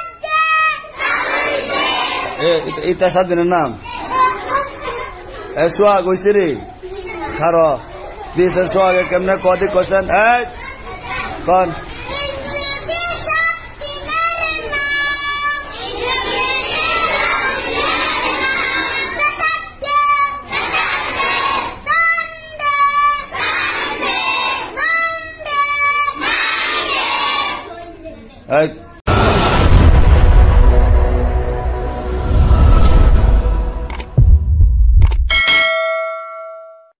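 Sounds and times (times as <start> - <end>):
boys shouting: 0.0 - 3.0, 10.7 - 27.7
quick clicks: 33.9 - 34.1, 35.0 - 35.3
bright bell ding: 35.3 - 37.0.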